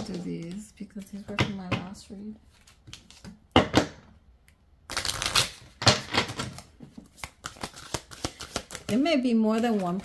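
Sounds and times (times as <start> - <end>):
cards being shuffled: 2.5 - 3.4, 4.9 - 10.0.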